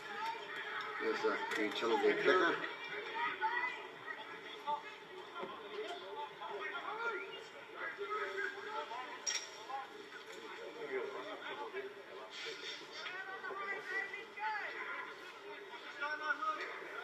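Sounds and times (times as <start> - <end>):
spectators and players chattering: 0.0 - 17.0.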